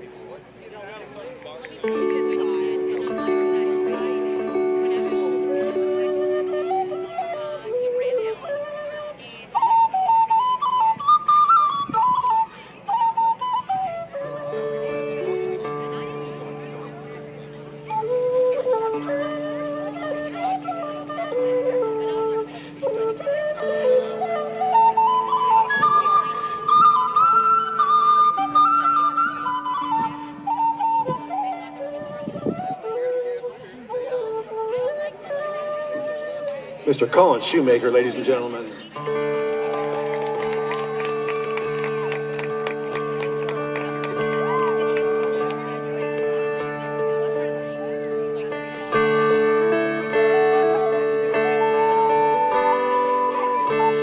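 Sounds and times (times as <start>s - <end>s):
flute playing jig melody: 1.6s - 54.0s.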